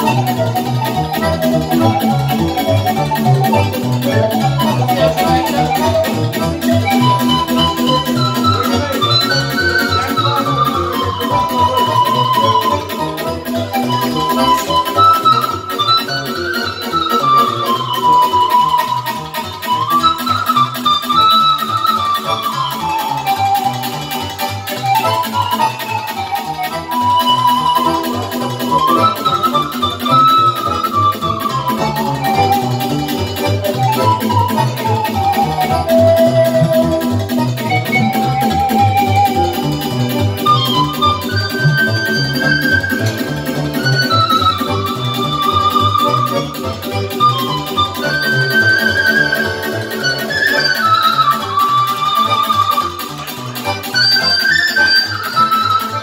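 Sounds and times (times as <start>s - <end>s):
keyboard accompaniment: 0.0s - 56.0s
pan flute dance melody: 0.0s - 56.0s.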